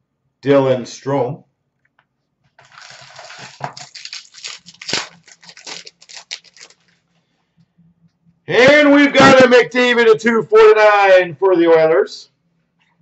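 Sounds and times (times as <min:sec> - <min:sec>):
wrapper crinkling and tearing: 0:02.6 - 0:07.0.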